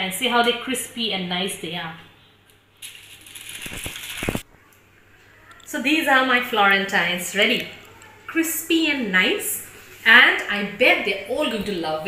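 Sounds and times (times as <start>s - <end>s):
aluminium foil crinkling: 2.8s - 4.5s
crisp biscuits crackling: 2.8s - 4.5s.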